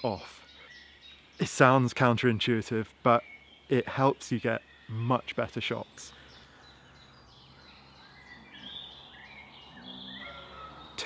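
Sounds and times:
low steady background hiss: 0:00.0 - 0:10.0
faint birdsong chirps: 0:00.0 - 0:11.0.

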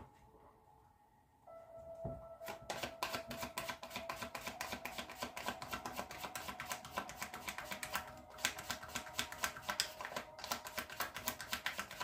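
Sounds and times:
cards being shuffled: 0:02.4 - 0:12.0.

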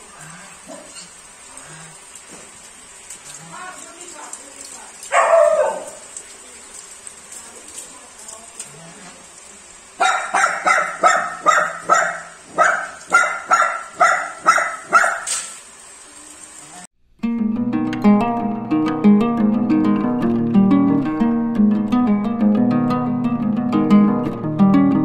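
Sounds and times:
dog barking: 0:05.1 - 0:06.2, 0:10.0 - 0:15.6.

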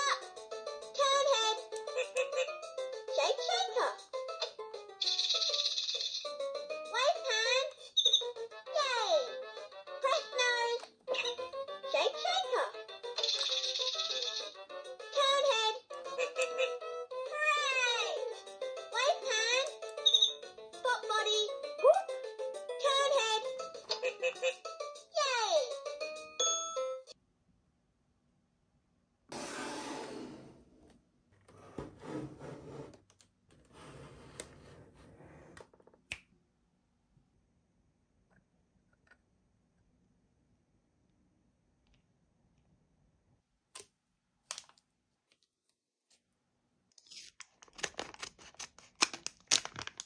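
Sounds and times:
packaging rubbing and rustling: 0:47.0 - 0:50.0.

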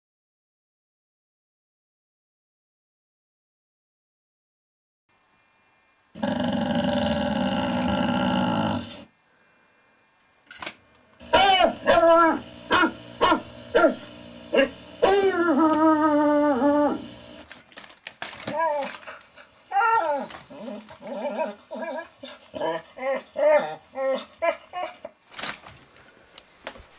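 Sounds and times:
dog growling: 0:06.2 - 0:09.1, 0:18.6 - 0:25.1
dog barking: 0:11.3 - 0:15.4
dog yipping: 0:14.6 - 0:15.8.

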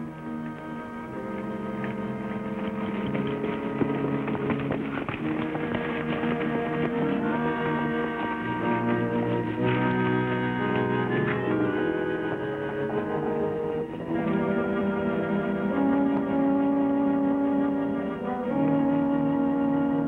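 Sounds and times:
horses' hooves clip-clopping: 0:00.0 - 0:16.8
dramatic orchestral film score: 0:00.0 - 0:20.0.

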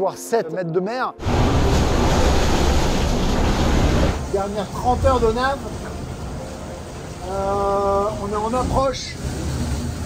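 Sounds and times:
water rushing with deep rumble: 0:01.2 - 0:10.0.

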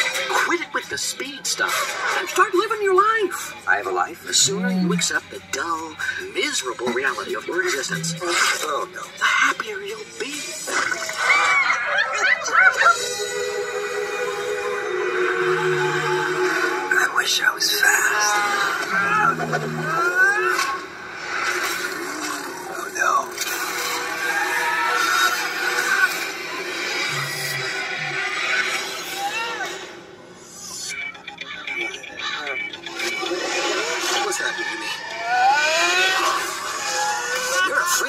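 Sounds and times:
music: 0:00.0 - 0:38.0
sound effects: 0:04.4 - 0:05.1, 0:07.8 - 0:08.4, 0:18.8 - 0:20.6.

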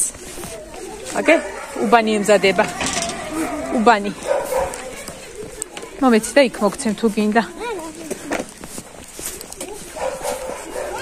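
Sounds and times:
dog barking: 0:01.2 - 0:02.1, 0:03.4 - 0:05.1, 0:10.0 - 0:11.0.

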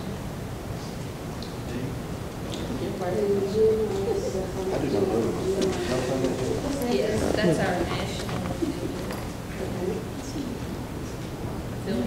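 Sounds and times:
murmur of people talking: 0:00.0 - 0:12.0.

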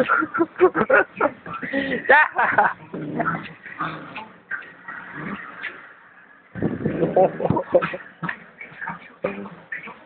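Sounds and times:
small dog growling: 0:02.8 - 0:04.4, 0:05.0 - 0:05.7.

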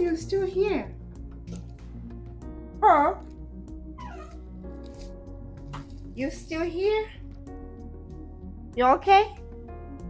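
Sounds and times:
background music: 0:00.0 - 0:10.0
dog whining: 0:04.0 - 0:04.4.

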